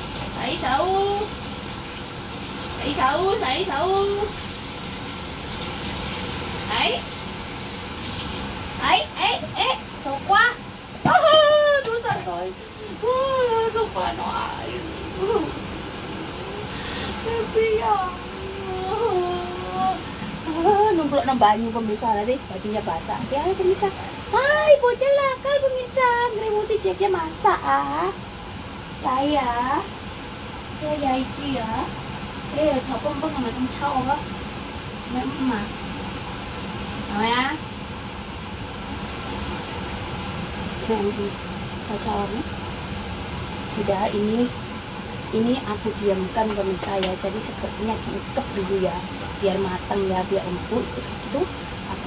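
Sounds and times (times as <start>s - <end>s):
background hum: 0.0s - 52.0s
low background noise: 0.0s - 52.0s.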